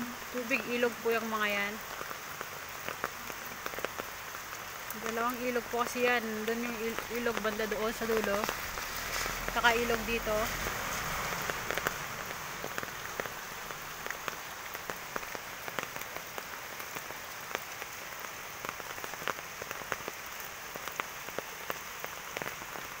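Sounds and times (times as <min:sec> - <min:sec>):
heavy rain on foliage: 0:00.0 - 0:23.0
raindrops ticking close by: 0:00.0 - 0:23.0.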